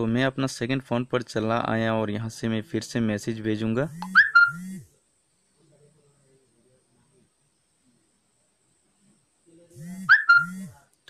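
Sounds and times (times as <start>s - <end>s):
phone notification tone: 4.0s - 4.7s, 10.0s - 10.7s.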